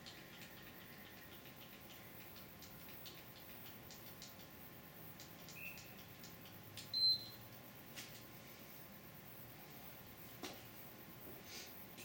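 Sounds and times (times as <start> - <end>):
faint clicks: 0.0 - 4.6, 5.2 - 6.9.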